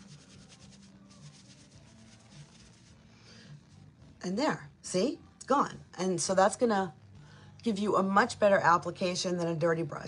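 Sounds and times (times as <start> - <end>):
brush rubbing on cloth: 0.0 - 3.0.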